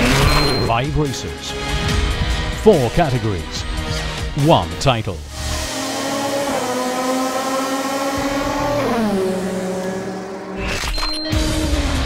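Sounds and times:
race car engine at high revs: 0:00.0 - 0:00.7, 0:05.2 - 0:12.0.

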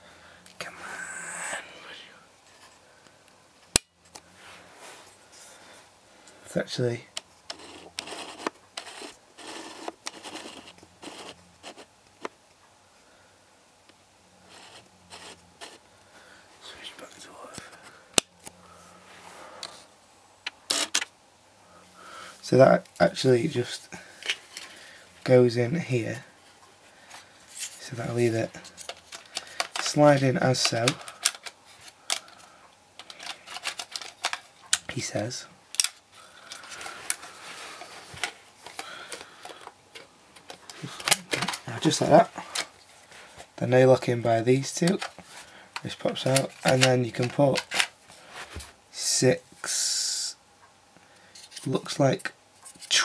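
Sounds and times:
plastic scraping and rubbing: 0:07.5 - 0:12.3, 0:14.5 - 0:15.8, 0:46.0 - 0:47.9.

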